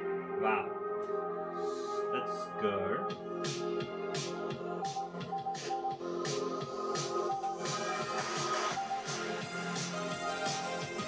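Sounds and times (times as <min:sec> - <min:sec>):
music with a steady beat: 0:00.0 - 0:11.0.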